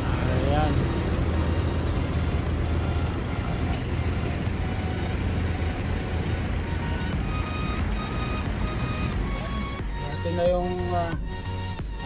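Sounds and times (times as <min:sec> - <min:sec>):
vehicle engine rumble: 0:00.0 - 0:12.0.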